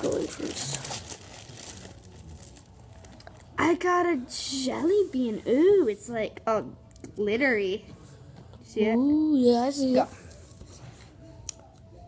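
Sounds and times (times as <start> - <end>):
faint crinkling and rustling: 0.0 - 3.6.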